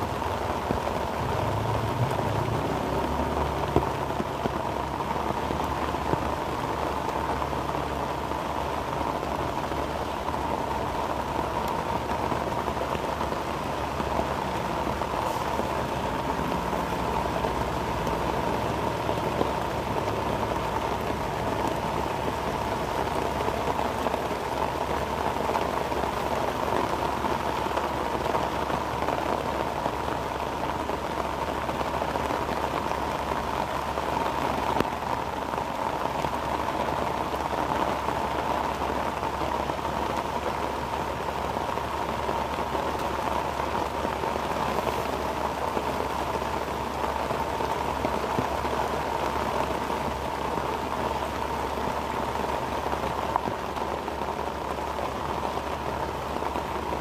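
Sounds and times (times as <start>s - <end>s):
heavy rain: 0.0s - 57.0s.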